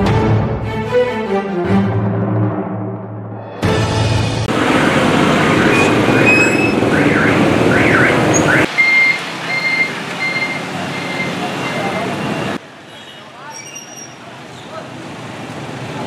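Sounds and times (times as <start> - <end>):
street traffic: 3.9 - 16.0
motorbikes: 4.5 - 16.0
electronic warning beep: 5.5 - 12.4
voices: 10.3 - 12.6.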